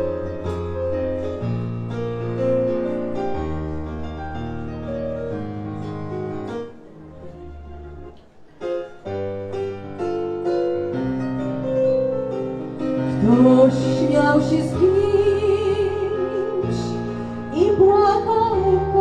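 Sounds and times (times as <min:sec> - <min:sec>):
keyboard playing piano chords: 0:00.0 - 0:19.0
woman singing with vibrato: 0:13.1 - 0:19.0.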